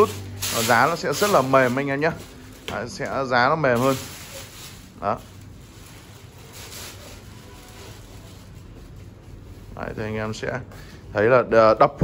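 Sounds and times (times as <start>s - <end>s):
plastic bag rustling: 0.0s - 10.6s.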